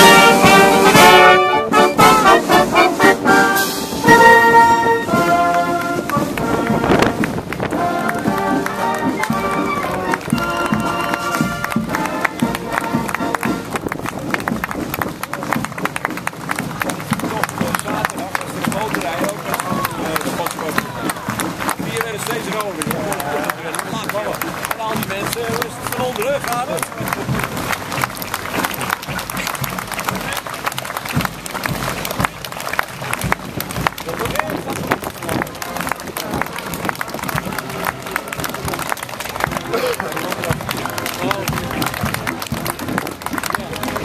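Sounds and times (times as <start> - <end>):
crowd chatter: 0.0 - 44.0
marching band playing: 0.0 - 44.0
street noise: 0.0 - 44.0.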